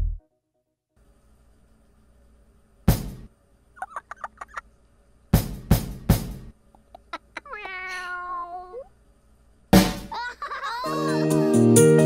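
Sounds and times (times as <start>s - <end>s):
squeaky chirps: 3.8s - 4.6s.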